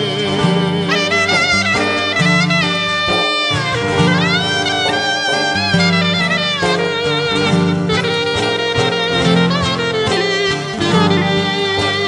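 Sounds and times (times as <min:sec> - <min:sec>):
clarinet lead melody: 0:00.0 - 0:12.0
violin: 0:00.0 - 0:12.0.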